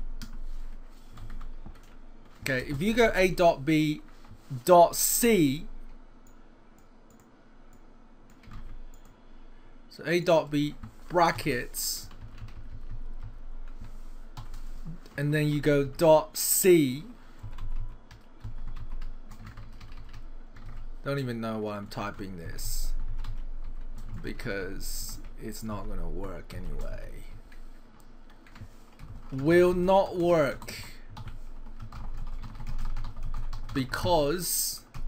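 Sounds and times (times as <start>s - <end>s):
computer keyboard typing: 8.3s - 9.1s, 10.8s - 14.6s, 17.4s - 20.9s, 22.9s - 24.3s, 28.3s - 34.1s.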